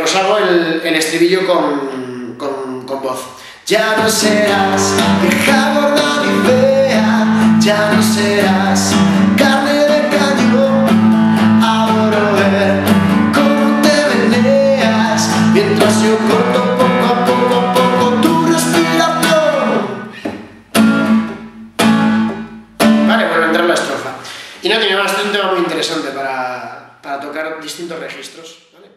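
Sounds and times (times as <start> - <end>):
man singing: 1.7 - 20.3
nylon-string guitar strumming: 3.7 - 24.0.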